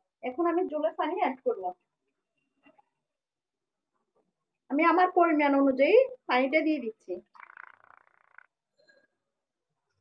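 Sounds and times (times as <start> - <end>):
faint raspy sound: 7.2 - 9.4.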